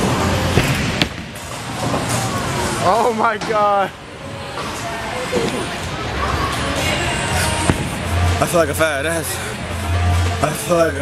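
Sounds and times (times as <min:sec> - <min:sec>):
bowling alley din: 0:05.6 - 0:11.0.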